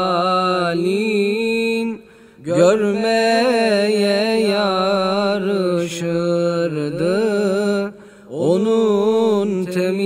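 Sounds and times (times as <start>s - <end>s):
man singing a hymn unaccompanied: 0.0s - 10.0s.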